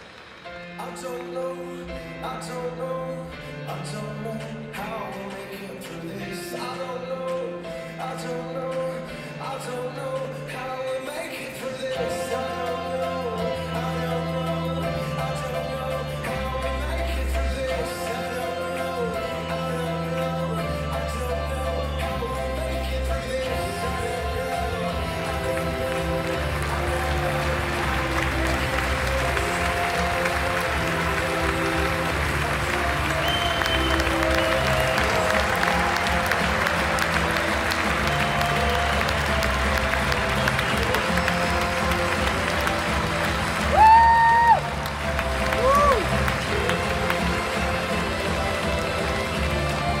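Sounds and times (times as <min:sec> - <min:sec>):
audience applauding: 0:00.0 - 0:01.3, 0:23.5 - 0:50.0
music over loudspeakers: 0:00.0 - 0:50.0
crowd whooping: 0:26.5 - 0:47.2.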